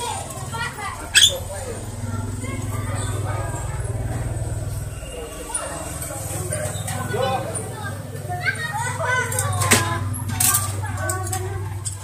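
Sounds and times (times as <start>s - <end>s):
bird whistling and chattering: 1.1s - 1.4s.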